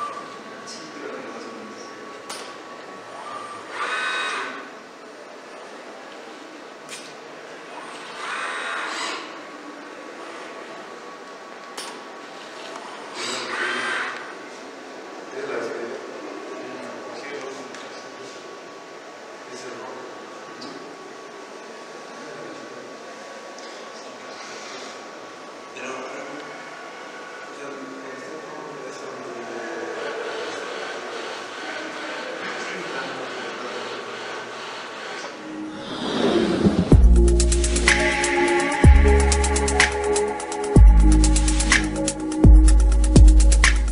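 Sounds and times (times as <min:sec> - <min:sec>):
steady background hum: 0:00.0 - 0:43.9
robot arm motor and air noise: 0:13.1 - 0:14.3.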